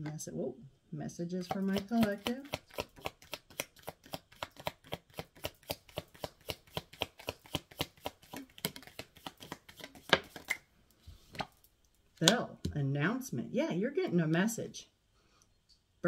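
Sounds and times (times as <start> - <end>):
cards being shuffled: 1.5 - 10.6.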